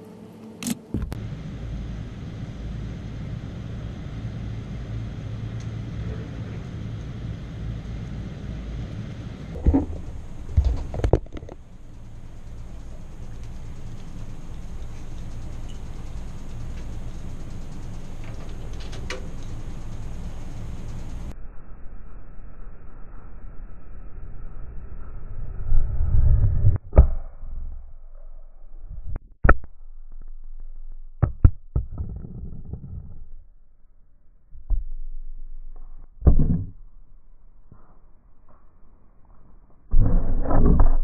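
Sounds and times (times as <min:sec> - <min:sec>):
low outdoor rumble: 0:00.0 - 0:41.0.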